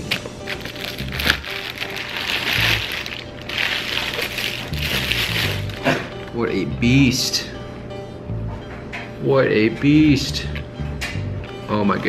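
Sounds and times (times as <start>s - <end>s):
plastic packaging crinkling: 0.0s - 6.0s
background music: 0.0s - 12.0s.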